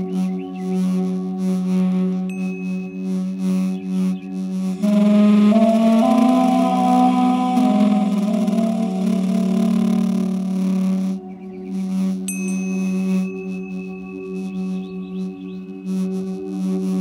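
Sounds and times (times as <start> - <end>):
tingsha cymbals ringing: 2.3 - 3.2, 4.7 - 15.0
duduk music long held notes: 4.8 - 11.8.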